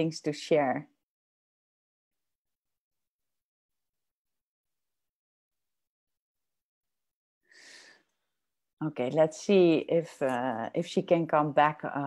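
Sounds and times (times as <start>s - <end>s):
faint breath: 7.4s - 8.3s.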